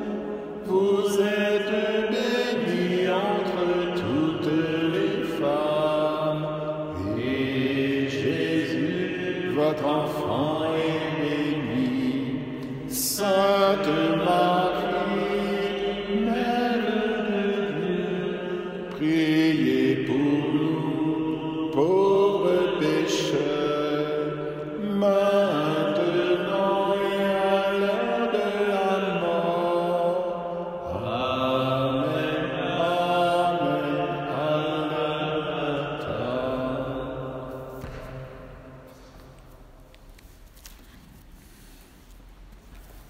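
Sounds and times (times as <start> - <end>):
chanted hymn singing: 0.0 - 43.0.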